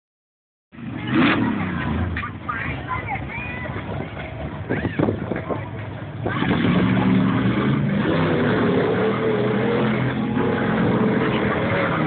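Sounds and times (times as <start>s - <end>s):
truck engine rumbling: 0.7s - 12.0s
people talking and calling out: 0.8s - 7.8s.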